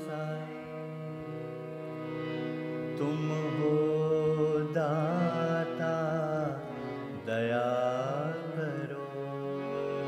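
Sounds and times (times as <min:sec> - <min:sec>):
man singing devotional song: 0:00.0 - 0:02.0, 0:02.6 - 0:10.0
sustained instrumental accompaniment: 0:00.0 - 0:10.0.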